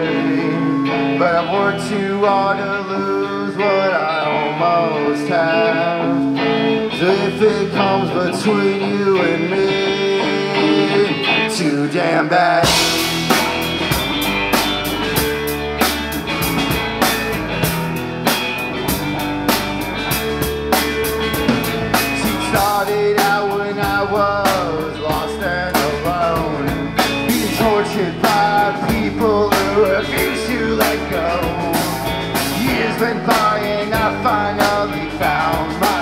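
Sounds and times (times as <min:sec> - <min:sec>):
lead guitar with bending notes: 0:00.0 - 0:36.0
live rock band playing: 0:00.0 - 0:36.0.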